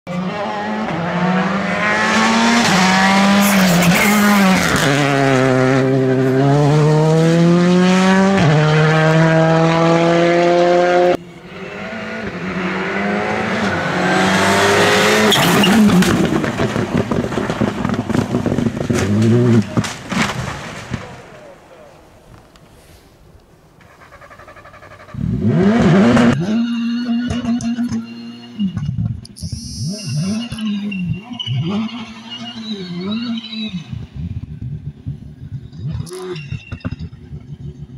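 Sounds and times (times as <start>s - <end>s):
rally car engine shifting gears: 0.1s - 21.4s, 23.8s - 29.3s
sharp exhaust pops: 15.3s - 21.3s.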